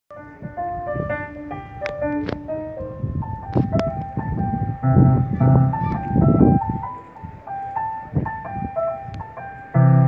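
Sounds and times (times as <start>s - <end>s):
electronic keyboard melody: 0.1s - 10.0s.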